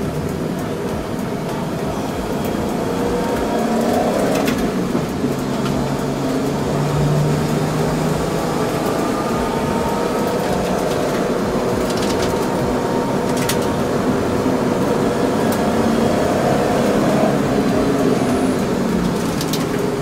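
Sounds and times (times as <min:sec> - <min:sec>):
car engine revving: 0:00.0 - 0:20.0
road noise: 0:00.0 - 0:20.0.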